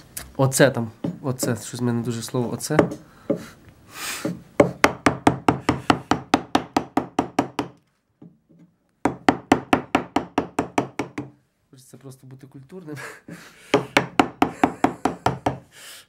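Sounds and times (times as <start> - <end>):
chisel tapping into wood: 1.0 - 1.7, 2.7 - 3.5, 4.2 - 11.4, 13.3 - 15.6.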